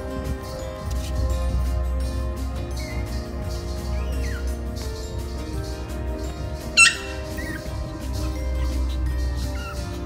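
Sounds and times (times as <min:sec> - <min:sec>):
background music with beat: 0:00.0 - 0:10.0
puppy yipping: 0:02.8 - 0:03.2, 0:03.9 - 0:04.6, 0:06.6 - 0:10.0.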